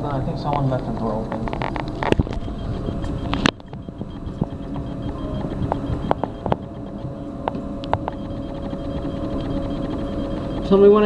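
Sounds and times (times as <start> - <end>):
elevator machinery hum: 0.0 - 11.0.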